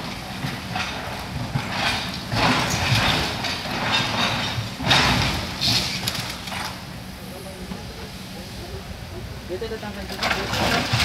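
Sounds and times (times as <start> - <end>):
hydraulic excavator running: 0.0 - 7.0, 9.7 - 11.0.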